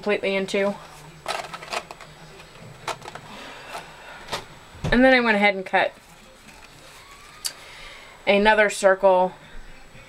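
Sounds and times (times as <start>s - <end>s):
soft paper rustle: 6.0s - 7.7s.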